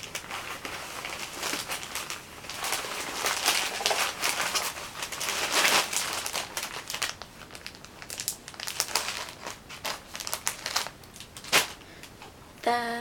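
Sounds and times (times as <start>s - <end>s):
packaging crinkling: 0.0s - 12.2s.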